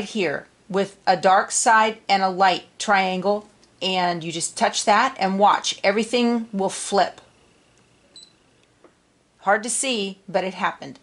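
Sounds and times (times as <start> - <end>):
faint steady high whine: 0.0 - 11.0.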